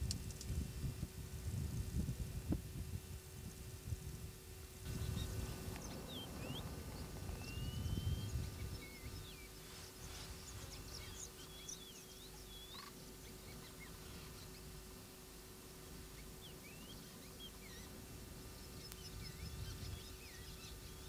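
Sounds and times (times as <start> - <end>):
wind rumble on microphone: 0.0 - 12.6, 17.0 - 21.0
birds chirping and whistling: 4.9 - 14.8, 16.0 - 18.0, 18.6 - 21.0.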